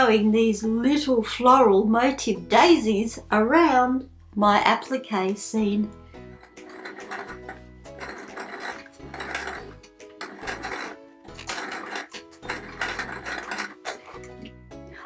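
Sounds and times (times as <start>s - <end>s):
background music: 0.0s - 15.0s
sewing machine stitching: 6.6s - 14.3s.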